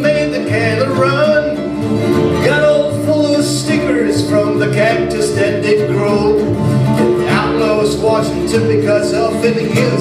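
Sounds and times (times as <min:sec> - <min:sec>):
mandolin: 0:00.0 - 0:10.0
plucked upright bass: 0:00.0 - 0:10.0
strummed acoustic guitar: 0:00.0 - 0:10.0.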